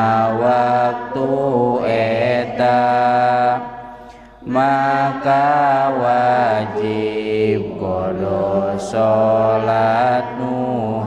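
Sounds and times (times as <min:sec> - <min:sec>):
man chanting: 0:00.0 - 0:03.8, 0:04.4 - 0:11.0.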